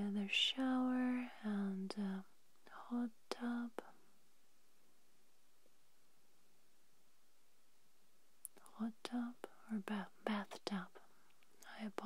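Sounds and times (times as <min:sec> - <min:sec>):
person whispering: 0:00.0 - 0:04.0, 0:08.5 - 0:12.0.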